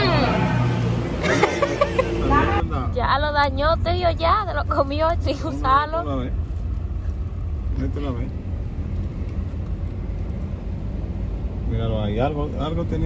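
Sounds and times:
car engine rumble: 0:00.0 - 0:13.0
road noise inside car: 0:00.0 - 0:13.0.

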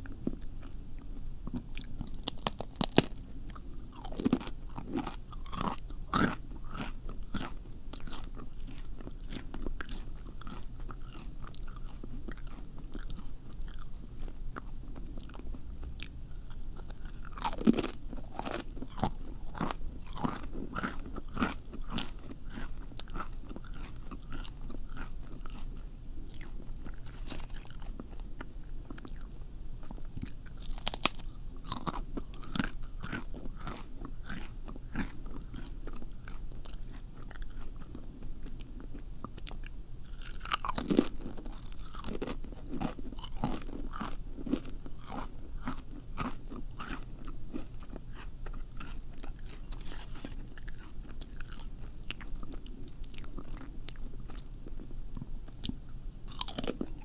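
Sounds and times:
crunchy food being chewed: 0:00.0 - 0:57.0.

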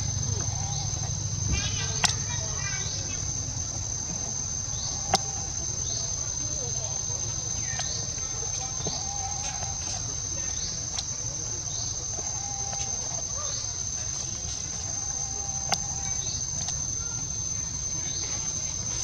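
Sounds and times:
insects droning: 0:00.0 - 0:19.0.

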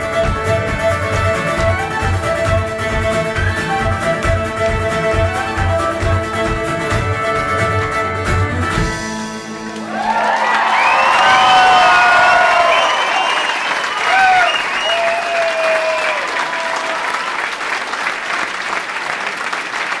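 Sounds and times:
audience applauding: 0:09.6 - 0:20.0
whoops and shouts: 0:09.9 - 0:17.4.

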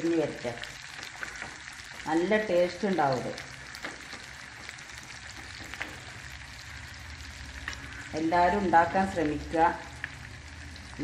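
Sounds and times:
oil sizzling: 0:00.0 - 0:11.0.

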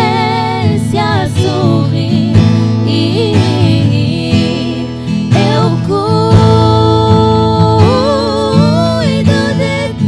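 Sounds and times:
women singing a worship song: 0:00.0 - 0:10.0.

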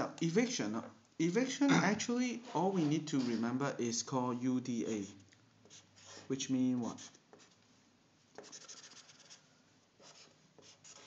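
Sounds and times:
marker scratching on paper: 0:04.8 - 0:07.6, 0:08.3 - 0:11.0.

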